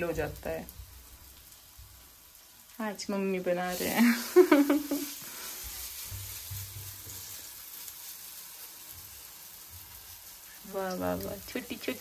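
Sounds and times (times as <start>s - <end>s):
batter sizzling in a frying pan: 0.0s - 12.0s.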